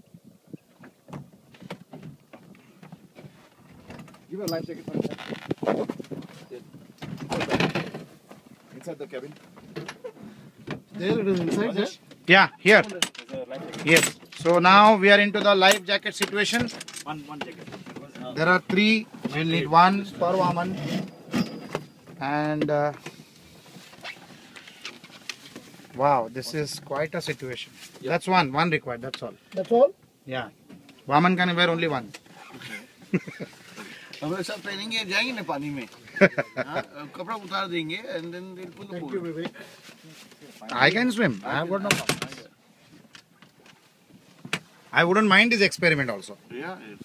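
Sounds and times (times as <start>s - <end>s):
microphone rubbing on fabric: 4.9s - 7.0s.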